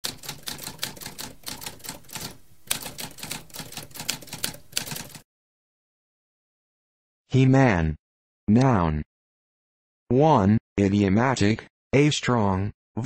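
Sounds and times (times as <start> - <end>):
typewriter keys clicking: 0.0 - 5.2.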